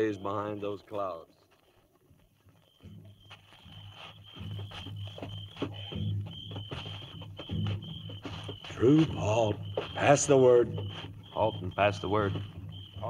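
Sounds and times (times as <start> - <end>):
crickets chirping: 0.0 - 13.0
horse hooves clopping: 0.0 - 13.0
quiet low background music: 0.0 - 13.0.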